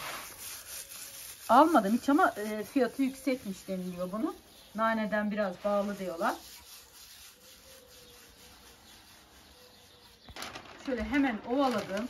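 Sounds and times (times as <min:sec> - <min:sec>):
dried leaves rustling between hands: 0:00.0 - 0:12.0
stiff paper crackling: 0:05.6 - 0:12.0.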